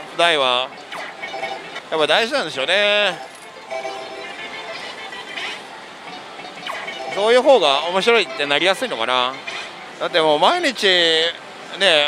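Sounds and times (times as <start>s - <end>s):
slot machine music and electronic sounds: 0.2s - 10.7s.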